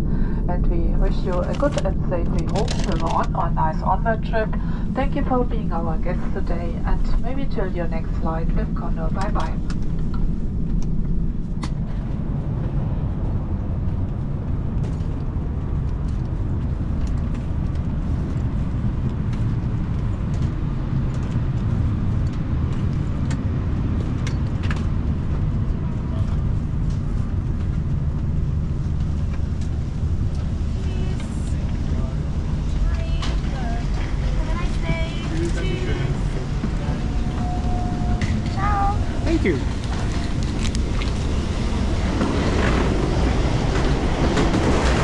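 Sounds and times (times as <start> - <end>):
airliner cabin low rumble: 0.0 - 45.0
murmured voices: 30.5 - 40.4.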